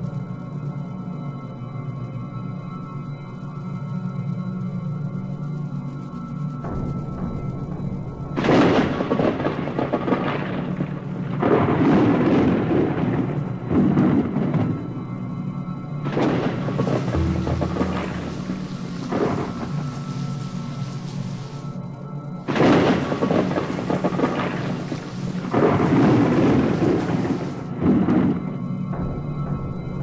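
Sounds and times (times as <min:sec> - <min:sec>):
eerie music: 0:00.0 - 0:30.0
thunder claps: 0:06.7 - 0:21.8, 0:22.4 - 0:30.0
rain hiss: 0:06.7 - 0:29.4.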